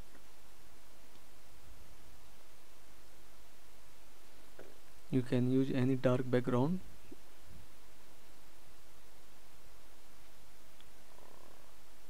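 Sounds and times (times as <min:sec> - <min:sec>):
steady microphone hiss: 0:00.0 - 0:12.0.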